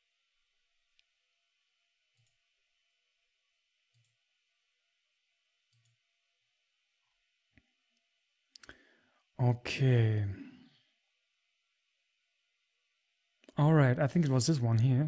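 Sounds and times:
faint computer mouse clicks: 0:05.7 - 0:06.0.

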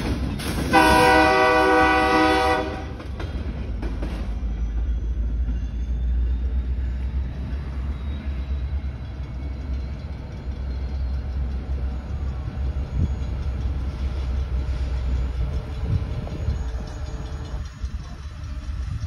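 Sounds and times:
diesel locomotive rumble: 0:00.0 - 0:19.0
street traffic passing: 0:00.0 - 0:19.0.

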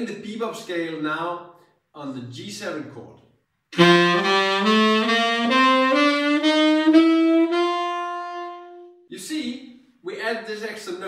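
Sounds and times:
saxophone playing a rising scale: 0:03.7 - 0:09.1.

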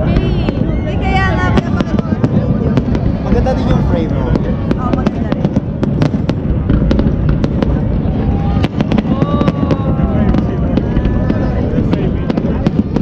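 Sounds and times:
fireworks bangs and crackles: 0:00.0 - 0:13.0
people's voices: 0:00.0 - 0:13.0.

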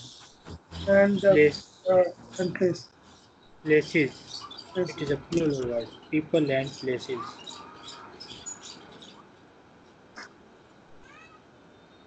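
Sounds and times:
faint animal call: 0:11.0 - 0:12.0.

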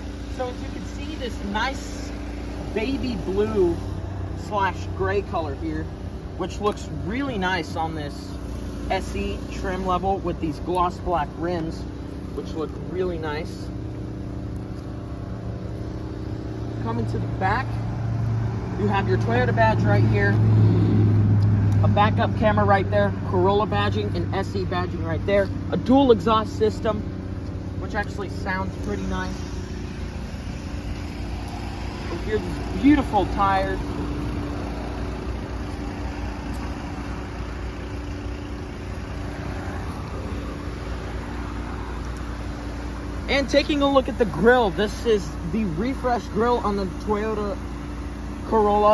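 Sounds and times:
low engine hum: 0:00.0 - 0:48.9
man talking: 0:00.3 - 0:13.8, 0:16.8 - 0:17.9, 0:18.7 - 0:20.5, 0:21.8 - 0:27.1, 0:27.7 - 0:29.7, 0:32.0 - 0:34.0, 0:43.2 - 0:47.6, 0:48.4 - 0:48.9.

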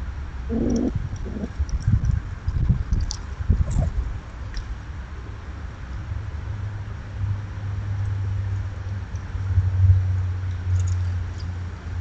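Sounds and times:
low rumbling and bumping on microphone: 0:00.9 - 0:04.2.

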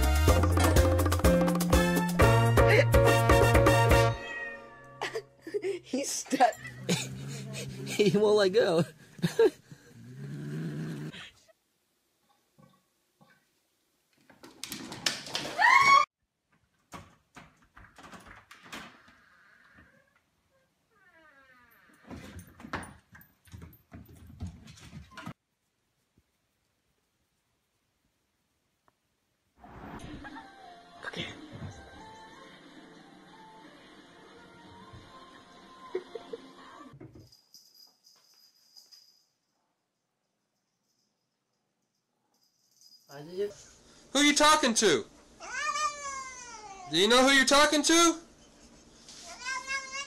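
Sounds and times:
cat meowing: 0:04.2 - 0:04.8
paws scrabbling on wooden floor: 0:22.1 - 0:25.3.

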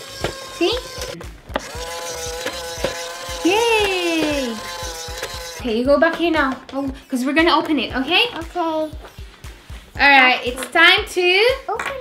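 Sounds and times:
toy motor and gears ticking: 0:00.0 - 0:05.7.

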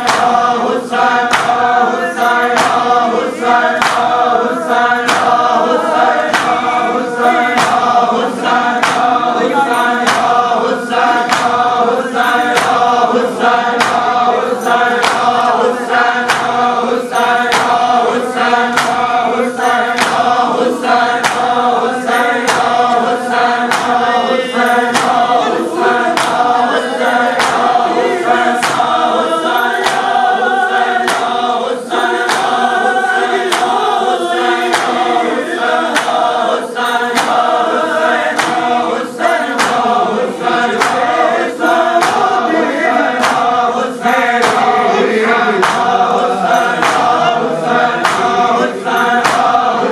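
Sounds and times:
hands beating on chests: 0:00.0 - 0:00.6, 0:01.2 - 0:04.3, 0:04.9 - 0:16.8, 0:17.4 - 0:21.6, 0:22.3 - 0:23.0, 0:23.6 - 0:27.8, 0:28.5 - 0:29.2, 0:29.8 - 0:30.3, 0:31.0 - 0:31.4, 0:32.3 - 0:32.6, 0:34.7 - 0:35.1, 0:35.9 - 0:36.4, 0:37.0 - 0:38.8, 0:39.4 - 0:41.2, 0:41.9 - 0:43.6, 0:44.2 - 0:44.8, 0:45.6 - 0:48.5, 0:49.2 - 0:49.7
men chanting together: 0:00.0 - 0:49.9.

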